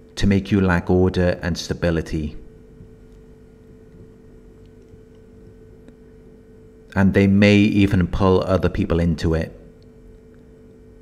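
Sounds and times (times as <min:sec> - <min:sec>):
soft low rumble: 0:02.3 - 0:07.0.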